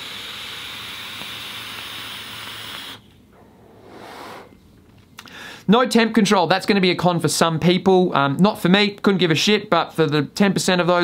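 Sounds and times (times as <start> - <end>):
soft exhale of vapour: 3.4 - 5.7.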